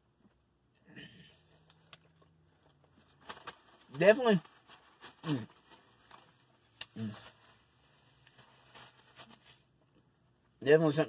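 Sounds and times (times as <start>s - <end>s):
mouth or wrapper noises: 1.5s - 10.1s.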